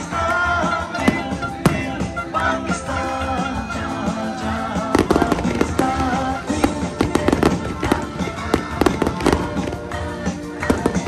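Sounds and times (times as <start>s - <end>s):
fireworks bangs and crackles: 0.0s - 11.0s
music playing: 0.0s - 11.0s.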